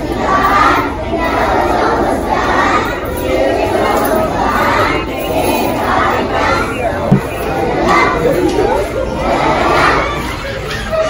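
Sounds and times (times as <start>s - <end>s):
crowd chatter in a hall: 0.0s - 11.0s
children calling out together: 0.3s - 11.0s.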